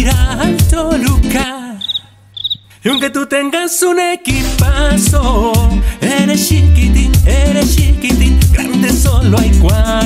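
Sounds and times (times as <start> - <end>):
cricket chirps: 1.8 - 3.1
singing: 2.8 - 10.0.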